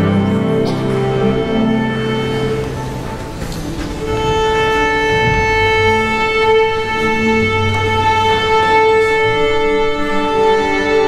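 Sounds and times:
string orchestra playing: 0:00.0 - 0:11.0.

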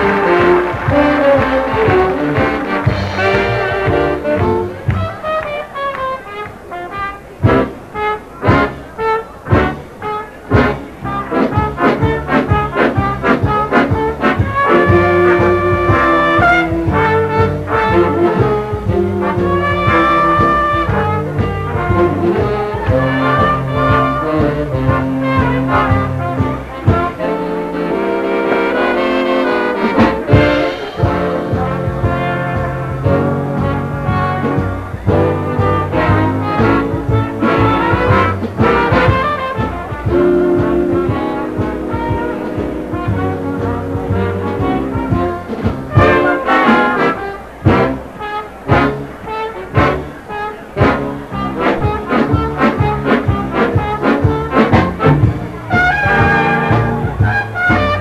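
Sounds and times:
big band orchestra with brass: 0:00.0 - 0:58.0.

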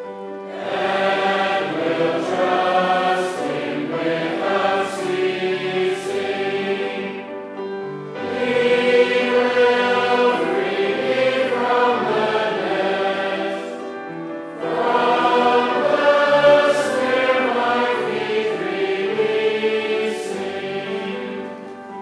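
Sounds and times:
congregation singing a psalm: 0:00.0 - 0:22.0.

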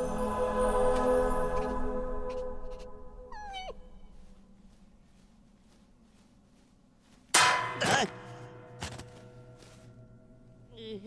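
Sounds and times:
squeaky cartoon vocal cry: 0:03.3 - 0:03.8
loud metallic clang ringing: 0:07.3 - 0:10.7.

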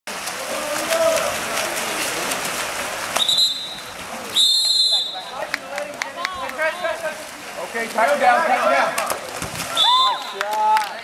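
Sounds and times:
water splashing: 0:00.1 - 0:11.0
voices: 0:00.2 - 0:11.0
referee's whistle blasts: 0:03.2 - 0:05.3.

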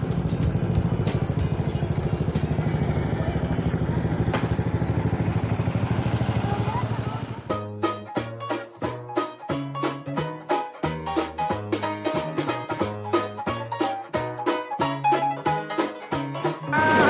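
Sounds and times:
motorcycle engine running: 0:00.0 - 0:07.6
plucked-string music: 0:07.5 - 0:17.0.

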